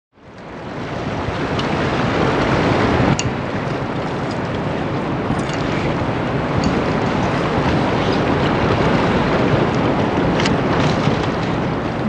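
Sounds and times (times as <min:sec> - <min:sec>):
wind on microphone: 0:00.2 - 0:12.0.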